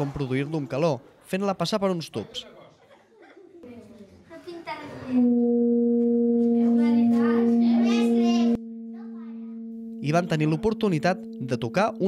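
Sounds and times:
metal tubes singing low tone: 5.2s - 12.0s.

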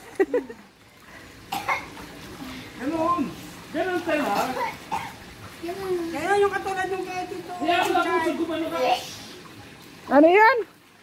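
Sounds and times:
person coughing: 1.5s - 1.9s.

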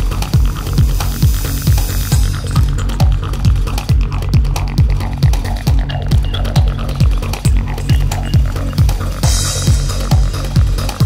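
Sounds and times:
electronic bassline and synths: 0.0s - 11.0s
hissing noise sweep: 0.0s - 11.0s
kick drum: 0.0s - 11.0s.

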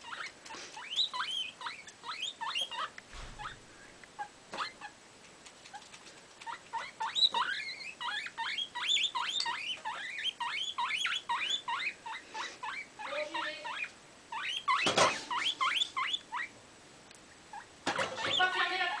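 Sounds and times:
guinea pig pitched calls: 0.0s - 3.6s, 4.2s - 16.6s, 17.5s - 19.0s
guinea pig squeaking: 0.0s - 3.6s, 4.2s - 16.6s, 17.5s - 19.0s.

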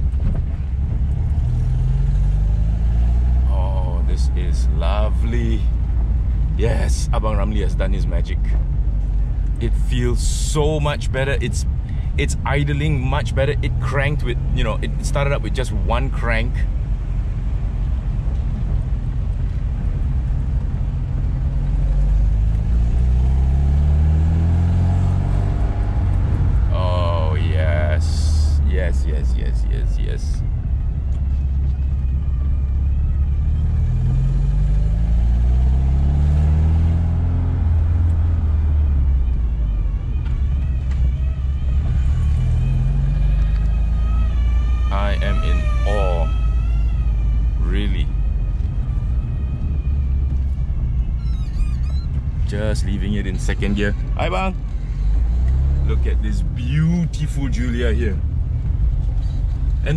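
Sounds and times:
car engine accelerating: 0.0s - 59.9s.

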